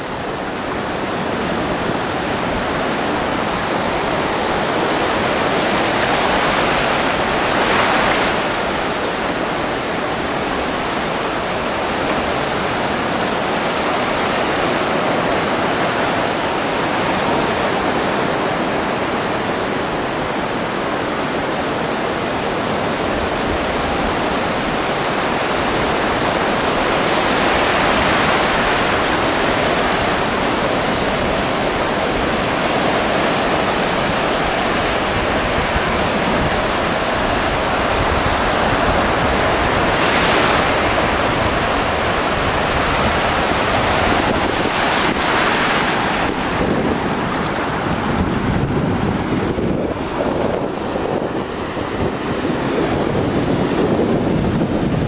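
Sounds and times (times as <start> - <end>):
ocean surf breaking on beach: 0.0 - 55.0.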